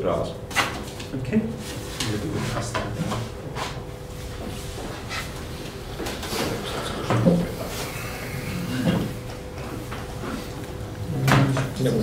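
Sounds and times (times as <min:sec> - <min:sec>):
indistinct low voices: 0:06.2 - 0:12.0.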